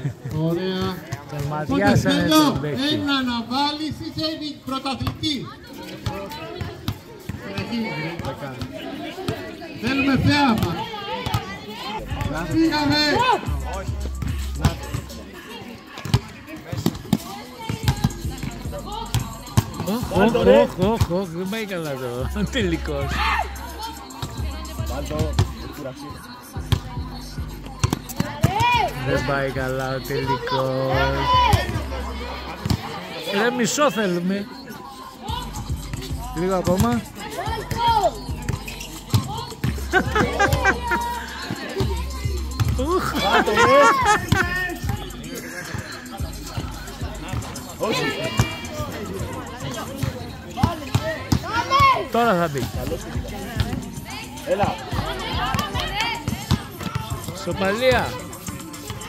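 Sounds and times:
voices: 0.0s - 59.0s
music: 12.0s - 15.4s, 17.1s - 33.3s, 34.5s - 59.0s
young voices calling out: 37.0s - 52.2s.

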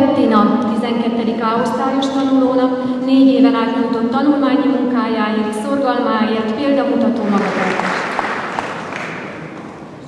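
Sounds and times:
audience applauding: 7.2s - 10.0s.

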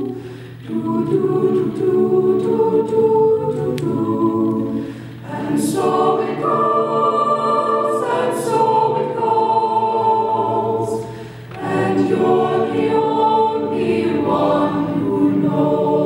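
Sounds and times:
a cappella group singing chords: 0.0s - 16.0s.

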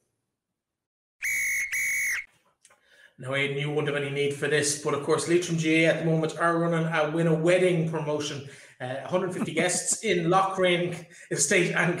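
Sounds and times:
referee's whistle blasts: 1.2s - 2.3s.

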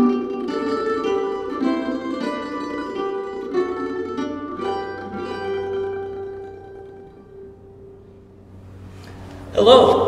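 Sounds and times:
mandolin chord ringing out: 0.0s - 9.1s.

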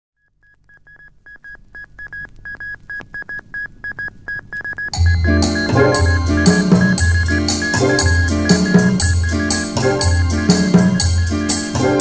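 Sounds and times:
morse code beeps: 0.2s - 12.0s.

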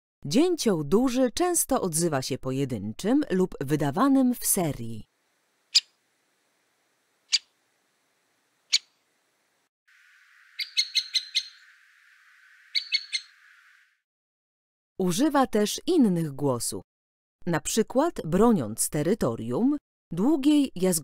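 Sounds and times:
faint background hiss: 4.5s - 14.0s
woodpecker kik calls: 5.7s - 6.0s, 7.2s - 7.6s, 8.6s - 9.1s, 10.0s - 13.8s.

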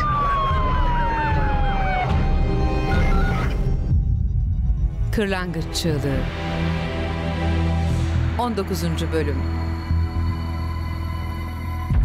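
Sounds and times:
siren gliding down in pitch: 0.0s - 3.6s
warbling siren: 0.0s - 4.6s.

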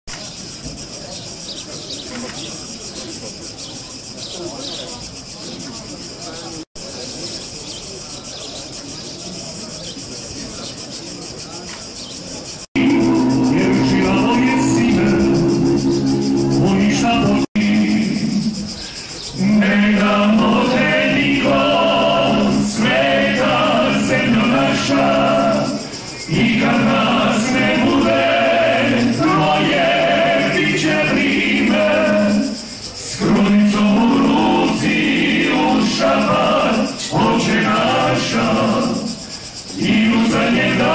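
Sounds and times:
insects buzzing: 0.1s - 40.9s
murmur of people: 0.1s - 40.9s
music of long held chords: 12.8s - 18.6s, 20.0s - 32.5s
male choir singing a cappella: 12.8s - 40.9s.

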